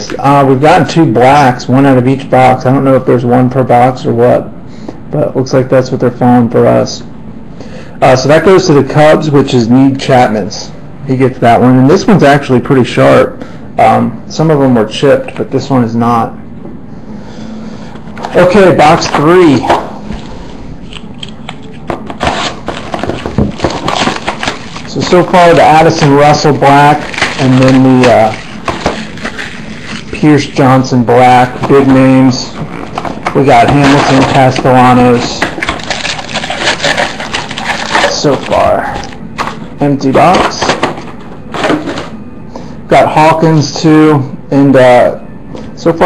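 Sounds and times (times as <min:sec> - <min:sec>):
plastic wrap crinkling: 0:18.2 - 0:42.2.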